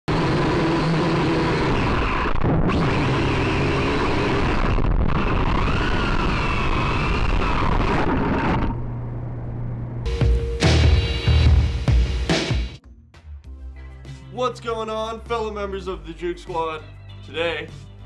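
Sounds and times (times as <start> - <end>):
quadcopter motors buzzing: 0.1 - 7.4.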